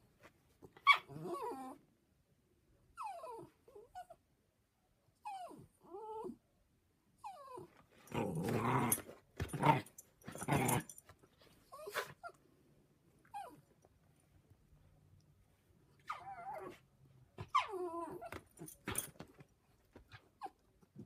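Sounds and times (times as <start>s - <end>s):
dog whining: 0.8s - 1.8s, 3.0s - 4.2s, 5.2s - 6.4s, 7.2s - 9.0s, 11.7s - 12.4s, 13.2s - 13.7s, 16.0s - 19.0s
dog growling: 7.6s - 10.9s.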